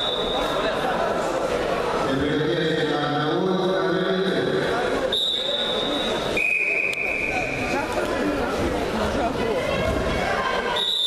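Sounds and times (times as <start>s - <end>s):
spectators chattering: 0.0s - 11.0s
referee whistle blasts: 5.1s - 7.7s, 10.8s - 11.0s.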